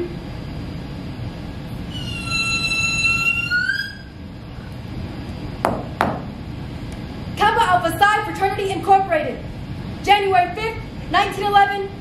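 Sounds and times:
high-pitched squealing call: 1.9 - 4.2.

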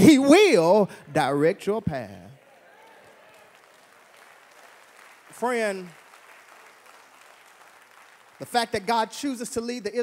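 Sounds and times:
faint applause: 2.3 - 8.9.

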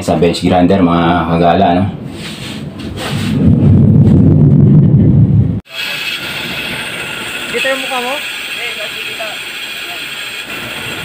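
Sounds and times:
loud low rumble: 2.7 - 7.6.

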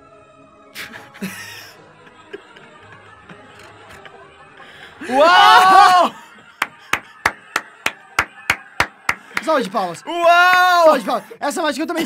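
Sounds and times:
person clapping hands slowly: 6.6 - 9.6.

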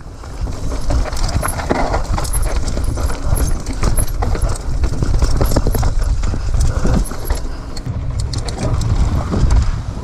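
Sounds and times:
mountain bike clattering on rocky trail: 0.0 - 9.8.

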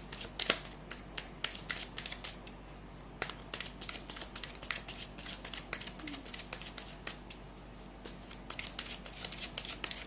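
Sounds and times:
cards being shuffled: 0.0 - 2.6, 3.2 - 10.0.

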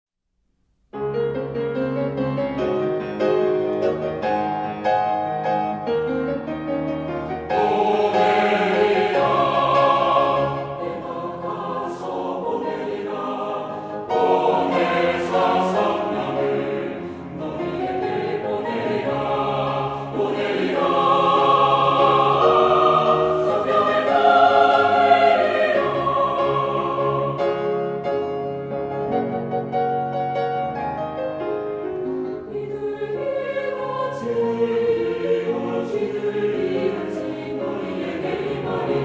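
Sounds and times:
piano accompaniment: 0.9 - 39.0
mixed choir singing: 7.5 - 28.0, 32.4 - 39.0.

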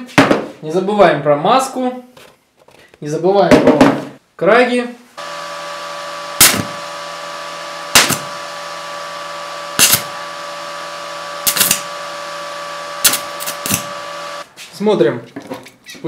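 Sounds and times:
electric arc bursts: 5.2 - 14.5
steady multi-tone hum: 5.2 - 14.5.

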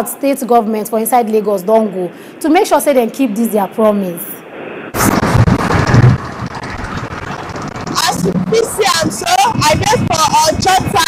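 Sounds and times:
wind on microphone: 3.6 - 11.0
roadside traffic rumble: 5.0 - 11.0.

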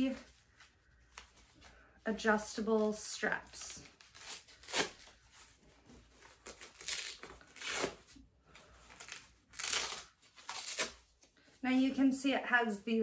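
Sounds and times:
velcro straps ripping open: 3.8 - 5.2, 6.2 - 8.2, 8.8 - 11.2.

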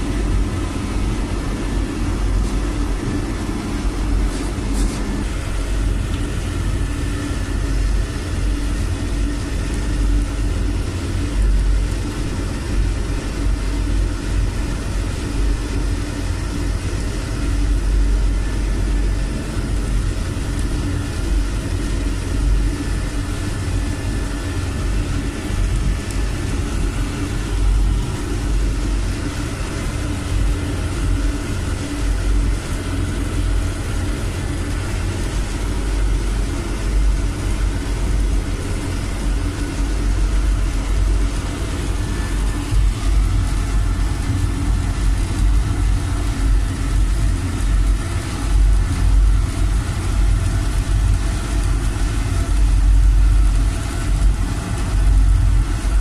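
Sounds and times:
constant hum: 0.0 - 56.0
oil burner rumbling: 0.0 - 56.0.

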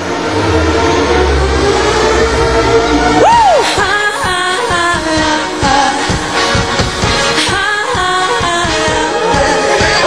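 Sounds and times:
deep bass line: 0.0 - 7.3.

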